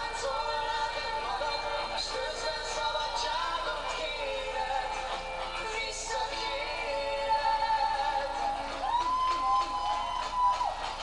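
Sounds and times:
vocal duet with band from laptop: 0.0s - 11.0s.

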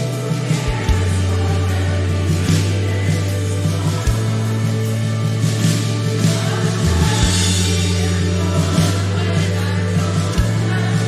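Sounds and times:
sustained bass notes: 0.0s - 11.0s
worship band playing slow song: 0.0s - 11.0s.

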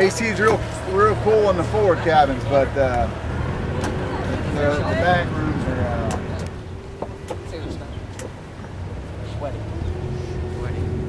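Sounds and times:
boat diesel engine humming: 0.0s - 11.0s.

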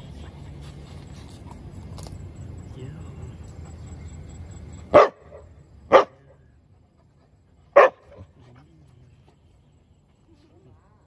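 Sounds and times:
young dog barking: 4.9s - 6.2s, 7.7s - 8.2s.

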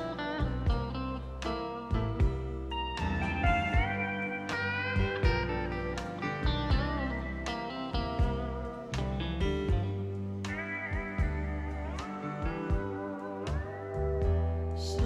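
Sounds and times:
drum beats: 0.0s - 14.6s
bass line: 0.0s - 15.0s.

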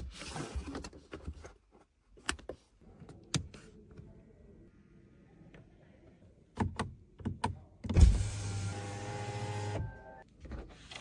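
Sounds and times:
power window motor hum: 8.0s - 9.8s.

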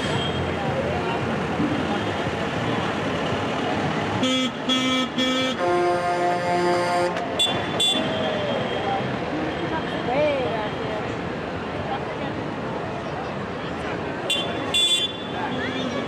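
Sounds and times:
passing engines: 0.0s - 16.0s
vehicle horn honking: 4.2s - 8.4s, 14.3s - 15.3s.

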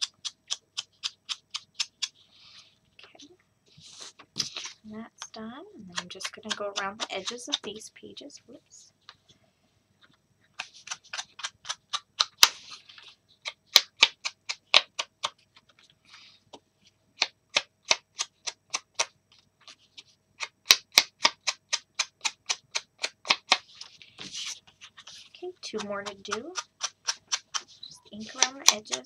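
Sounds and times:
foam pad rubbing paper edges: 5.9s - 7.8s, 10.6s - 16.4s, 17.6s - 29.0s.

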